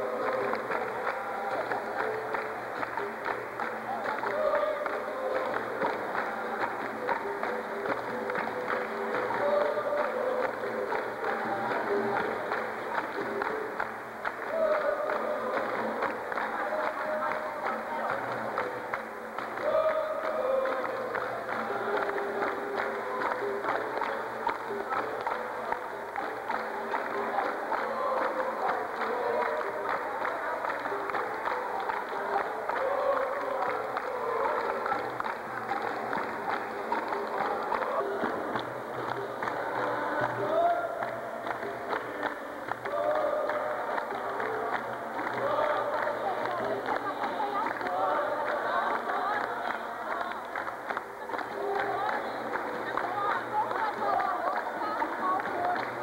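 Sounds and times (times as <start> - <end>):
rhythmic hand-clapping: 0.0 - 56.0.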